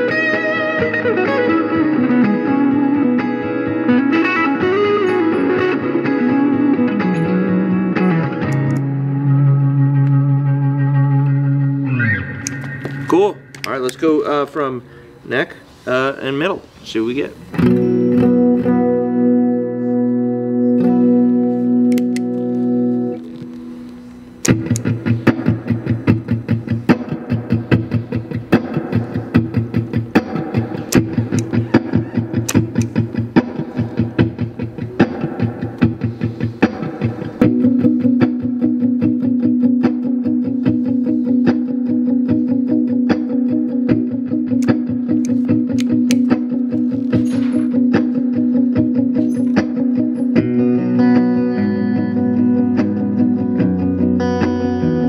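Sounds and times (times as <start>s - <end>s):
electric guitar chord ringing: 0.0s - 15.2s, 17.5s - 55.0s
fast rhythmic guitar picking: 0.0s - 15.4s, 17.4s - 55.0s
sustained low guitar note: 9.0s - 14.0s.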